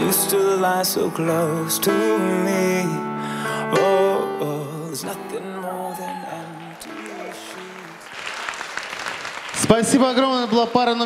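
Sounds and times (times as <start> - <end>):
pop ballad: 0.0 - 8.2
audience applauding: 5.6 - 11.0.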